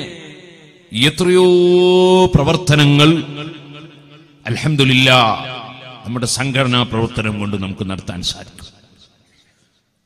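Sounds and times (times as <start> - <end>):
man chanting in held notes: 0.0 - 3.8.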